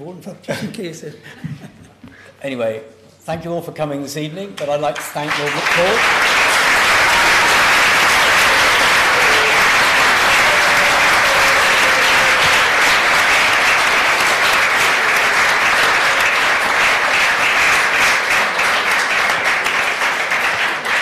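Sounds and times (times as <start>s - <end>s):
audience applauding: 4.6s - 21.0s.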